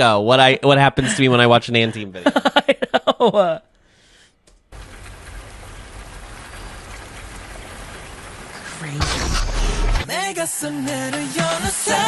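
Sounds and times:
steady rain falling: 0:04.5 - 0:10.1.

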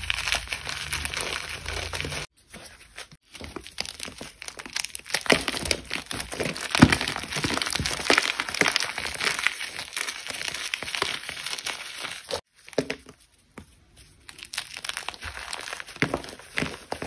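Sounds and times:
cornstarch chunks crunching: 0:00.0 - 0:02.3, 0:03.4 - 0:12.4, 0:14.2 - 0:17.0.

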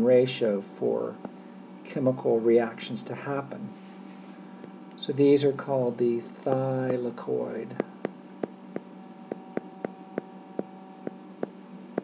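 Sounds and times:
steady electrical hum: 0:00.0 - 0:12.0
stylus tapping on tablet screen: 0:07.8 - 0:11.2.

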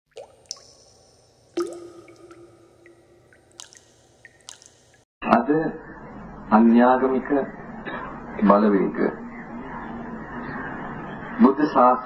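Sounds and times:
water drop plinks: 0:00.1 - 0:05.0
faint scattered drips: 0:00.1 - 0:05.1.

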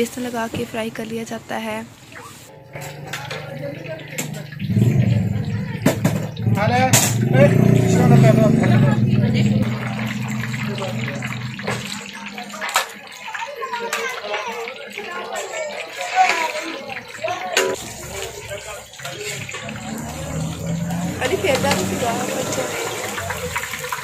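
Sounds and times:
batter deep-frying in oil: 0:02.5 - 0:24.0.

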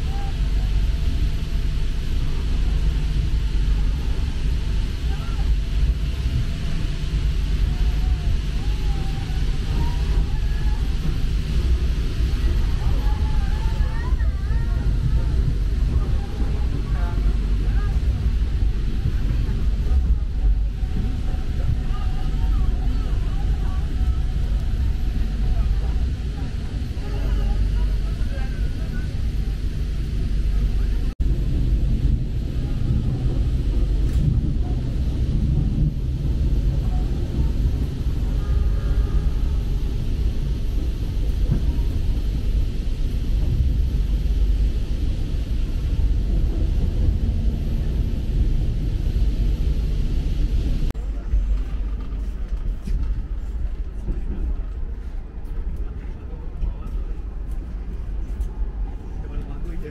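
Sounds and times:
faint passenger voices: 0:00.0 - 0:59.9
train rumbling from inside coach: 0:00.0 - 0:59.9.

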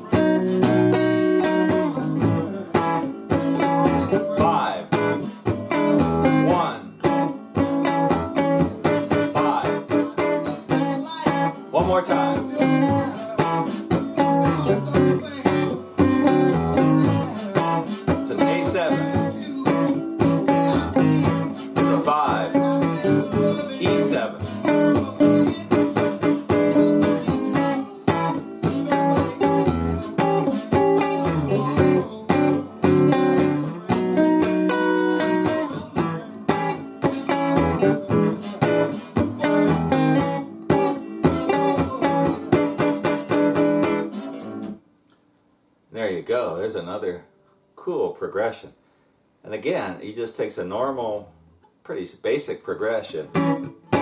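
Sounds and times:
electric guitar strumming blues chords: 0:00.0 - 0:44.9, 0:52.8 - 0:54.0
blues band recording: 0:00.0 - 0:45.3, 0:49.4 - 0:54.0.

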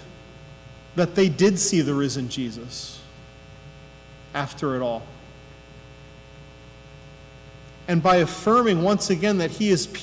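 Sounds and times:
electrical mains hum: 0:00.0 - 0:10.0
man speaking: 0:01.0 - 0:03.1, 0:04.3 - 0:05.2, 0:07.8 - 0:10.0.

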